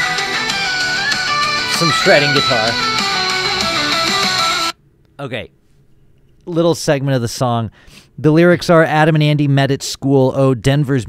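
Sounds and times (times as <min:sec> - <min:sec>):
hard rock electric guitar lead: 0:00.0 - 0:04.7.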